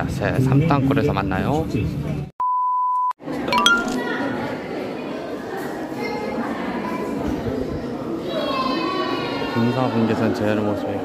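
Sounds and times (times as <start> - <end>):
electronic beep: 3.6 - 4.0
rising run of bright tones: 3.6 - 4.0.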